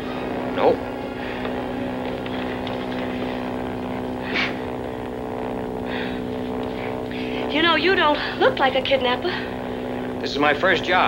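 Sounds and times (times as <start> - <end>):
propeller airplane engine drone: 0.0 - 11.0.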